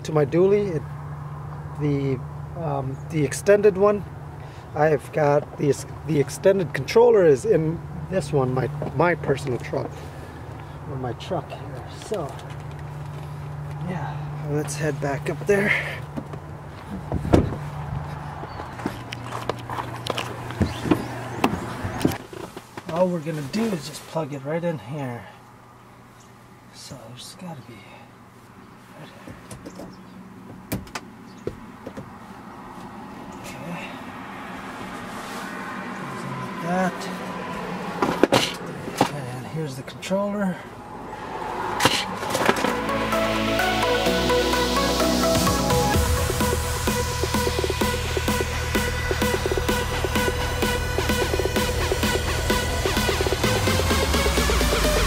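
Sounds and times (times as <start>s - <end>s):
vehicle engine idling: 0.0s - 22.2s, 40.7s - 55.0s
loud thump: 17.0s - 17.6s
electronic music: 42.0s - 55.0s.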